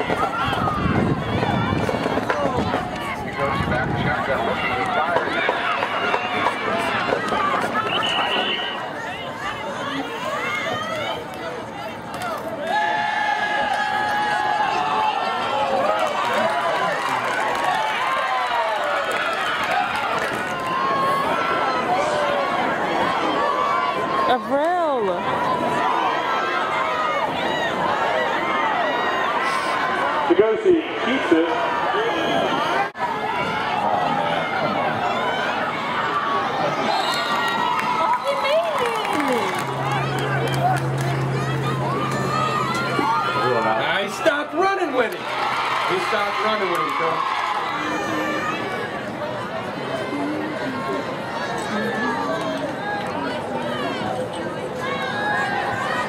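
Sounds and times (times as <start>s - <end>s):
crowd babble and calling out: 0.0s - 56.0s.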